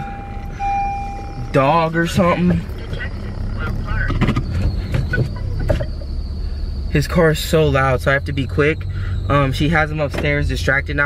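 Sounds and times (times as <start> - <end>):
car engine rumble from cabin: 0.0 - 11.0
faint high whine: 0.0 - 11.0.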